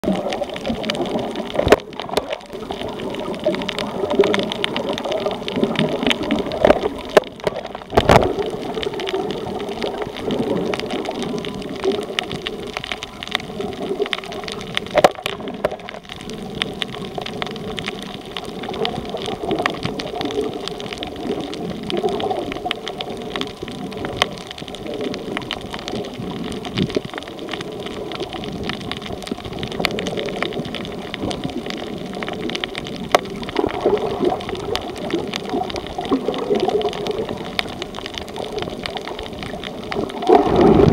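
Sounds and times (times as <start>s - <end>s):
muffled underwater water rush: 0.0s - 40.9s
sharp underwater clicks and crackles: 0.0s - 40.9s.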